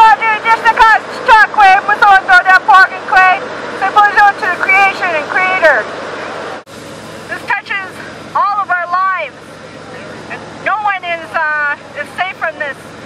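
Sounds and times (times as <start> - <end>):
person speaking through megaphone: 0.0 - 5.8.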